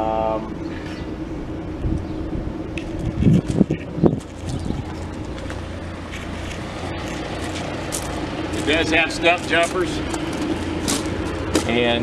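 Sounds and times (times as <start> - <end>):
tractor engine idling: 0.0 - 12.0
wind buffeting microphone: 1.0 - 12.0.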